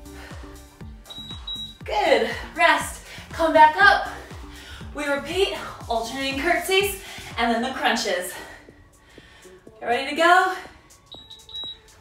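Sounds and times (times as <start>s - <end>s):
timer beeping: 1.0s - 1.9s, 11.1s - 12.0s.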